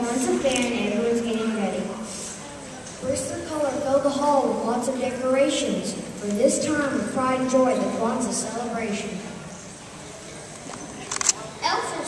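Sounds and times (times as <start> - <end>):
child speaking: 0.0 - 9.3, 11.5 - 12.0.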